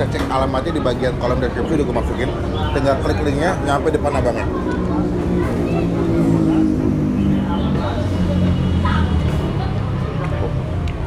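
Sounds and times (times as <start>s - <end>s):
traffic rumble: 0.0s - 11.0s
voices talking: 0.0s - 11.0s.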